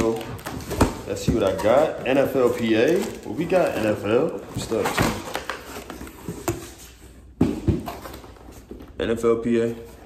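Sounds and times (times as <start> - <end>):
cardboard rustling: 0.0 - 10.0.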